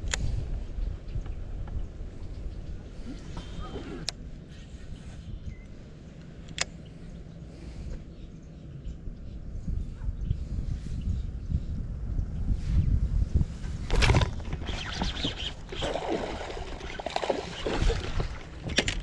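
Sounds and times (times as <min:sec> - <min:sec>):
wind buffeting microphone: 0:00.0 - 0:06.0, 0:08.7 - 0:19.0.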